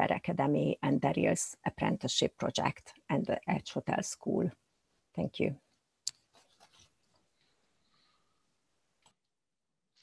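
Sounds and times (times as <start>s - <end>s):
scratchy rustles: 6.2s - 7.5s.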